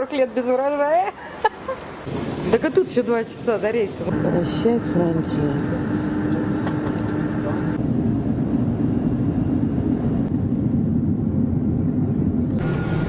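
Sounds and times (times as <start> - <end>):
jet engines rumbling: 1.9 - 13.0
cabin drone: 2.1 - 13.0.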